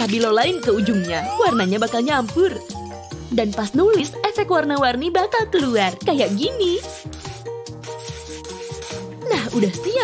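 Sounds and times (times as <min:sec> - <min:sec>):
background music: 0:00.0 - 0:10.0
highlighter rubbing on paper: 0:05.6 - 0:10.0.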